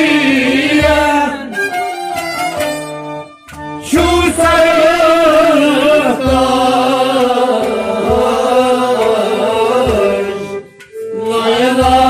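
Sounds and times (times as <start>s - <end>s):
man singing: 0.0s - 1.6s, 3.8s - 12.0s
instrumental accompaniment: 0.0s - 12.0s.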